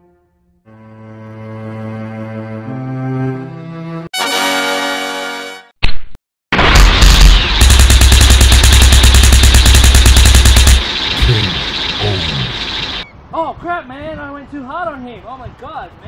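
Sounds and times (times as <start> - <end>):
loud deep rumble: 6.6 - 13.0
rapid gunfire-like blasts: 6.6 - 13.0.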